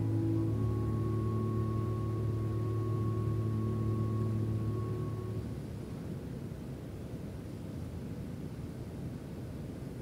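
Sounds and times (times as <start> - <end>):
low held tone: 0.0 - 5.9
faint hiss: 0.0 - 10.0.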